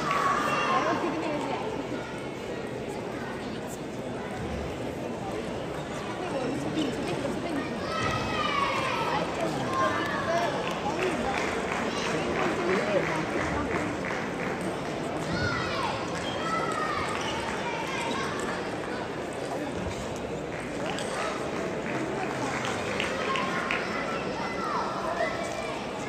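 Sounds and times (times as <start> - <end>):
murmur of voices: 0.0 - 26.0.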